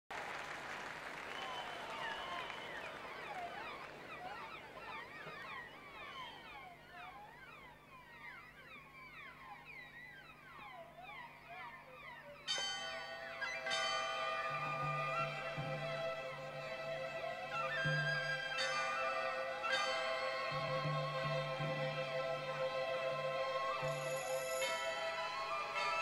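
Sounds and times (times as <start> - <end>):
audience whistling: 0.1 - 6.7, 13.3 - 26.0
crowd hush: 0.2 - 5.3
orchestra strings chord: 12.8 - 26.0.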